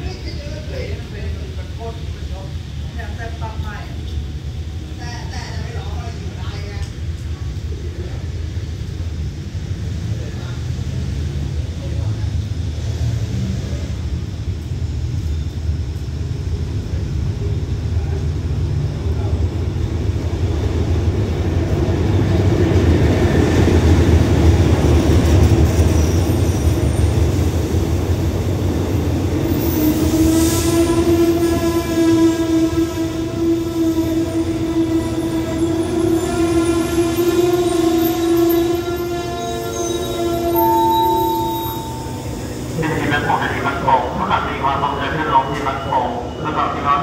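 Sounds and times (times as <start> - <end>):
train passing with low rumble: 0.0 - 47.0
train brakes squealing: 25.6 - 27.4, 29.4 - 32.5, 33.7 - 44.2, 45.1 - 47.0.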